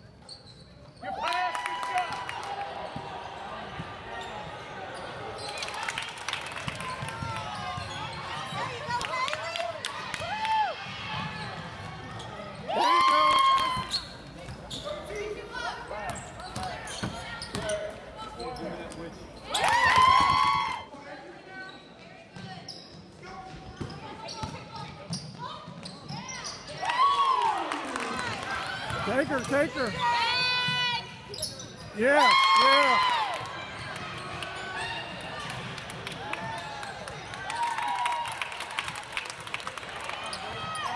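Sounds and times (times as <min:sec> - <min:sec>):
gym crowd noise: 0:00.0 - 0:40.9
loud held shout: 0:32.0 - 0:33.4.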